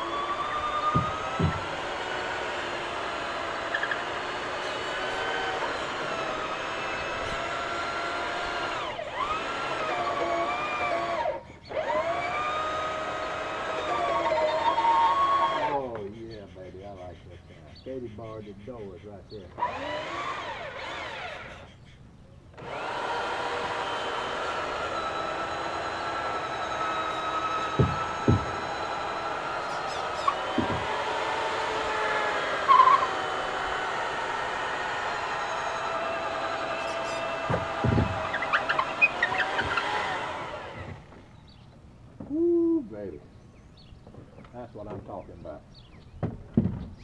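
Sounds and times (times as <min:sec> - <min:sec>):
electric drill boring through wood: 0:00.0 - 0:16.0, 0:19.5 - 0:21.7, 0:22.6 - 0:41.2
sharp knocks: 0:00.8 - 0:01.9, 0:26.2 - 0:32.1, 0:36.8 - 0:40.0, 0:46.2 - 0:47.0.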